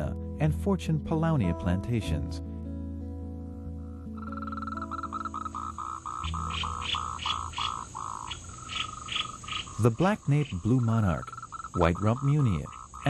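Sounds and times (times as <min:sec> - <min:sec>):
soft background music: 0:00.0 - 0:08.8, 0:09.5 - 0:12.8
high insect hiss: 0:04.2 - 0:13.0
short animal calls: 0:04.4 - 0:09.8.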